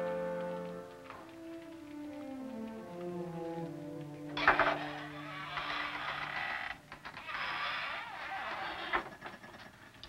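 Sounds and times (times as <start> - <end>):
door creaking: 4.3 - 9.8.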